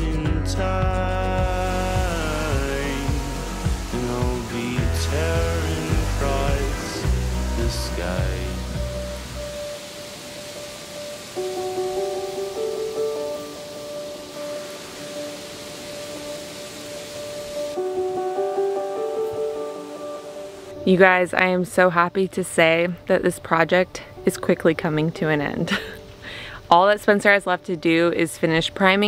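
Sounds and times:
deep bass part: 0.0s - 9.6s
held music chords: 0.0s - 21.0s.

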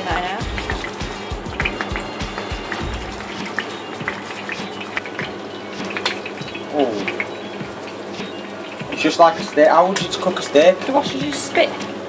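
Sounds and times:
music with low beat: 0.0s - 12.0s
steak sizzling in a frying pan: 0.0s - 12.0s.

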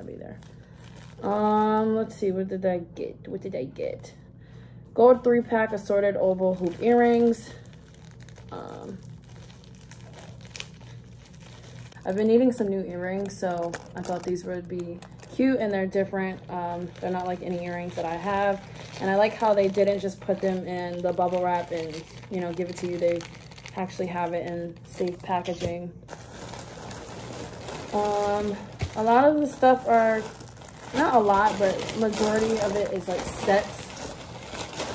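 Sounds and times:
plastic bag rustling: 0.0s - 2.0s, 5.9s - 34.9s
plastic packaging crinkling: 0.0s - 2.0s, 5.8s - 34.9s.

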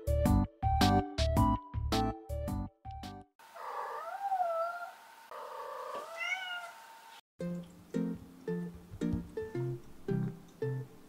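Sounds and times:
cat meowing: 3.6s - 6.8s.

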